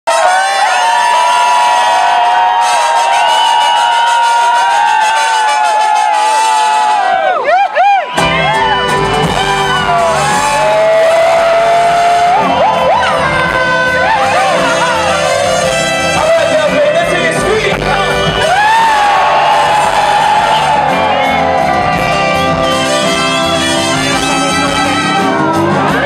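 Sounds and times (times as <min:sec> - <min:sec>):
trumpets playing melody: 0:00.1 - 0:07.3, 0:08.2 - 0:26.0
full band with bass and drums: 0:00.1 - 0:26.0.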